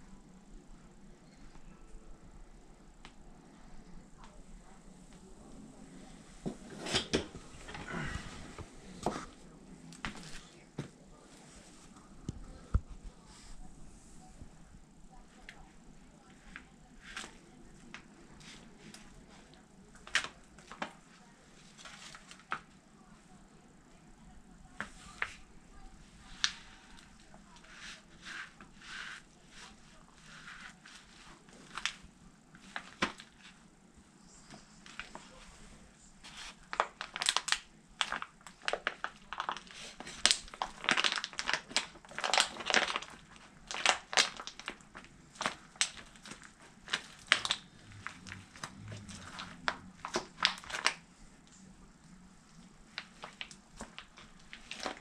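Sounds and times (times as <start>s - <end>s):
plastic tray crackling and crunching: 16.5s - 22.8s, 26.2s - 33.6s, 36.2s - 51.0s, 52.9s - 55.0s.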